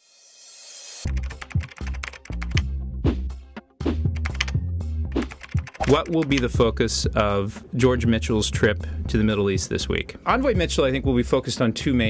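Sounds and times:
sharp ticking clicks: 1.1s - 2.6s, 4.2s - 4.6s, 5.2s - 6.6s.

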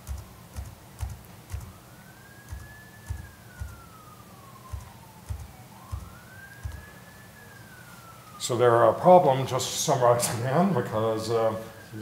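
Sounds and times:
faint wailing siren: 0.0s - 12.0s.

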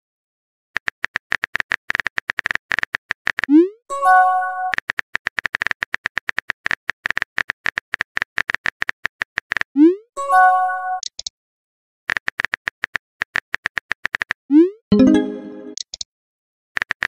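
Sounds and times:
keyboard typing clicks: 14.9s - 16.1s.

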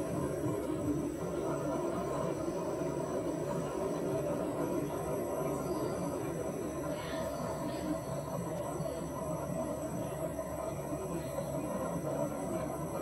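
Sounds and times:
microwave oven humming: 0.0s - 13.0s.

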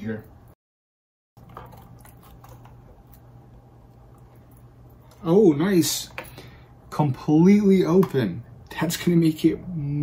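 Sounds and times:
steady low hum: 1.4s - 10.0s.

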